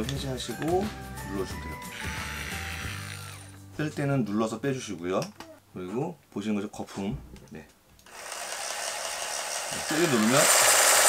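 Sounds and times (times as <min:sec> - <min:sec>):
hand blender motor running: 0:01.9 - 0:03.6, 0:08.1 - 0:11.0.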